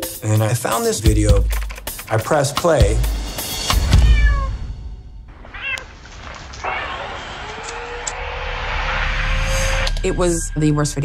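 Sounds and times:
kittens mewing: 5.3s - 6.0s, 6.6s - 7.6s.

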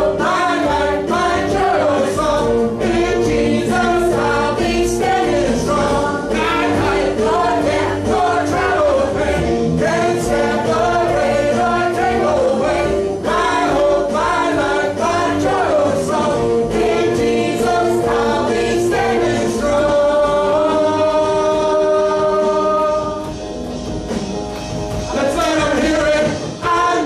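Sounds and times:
congregation singing: 0.0s - 23.3s, 25.0s - 27.0s
lead singers on microphones: 0.0s - 23.3s, 25.1s - 27.0s
keyboard chords: 0.0s - 27.0s.

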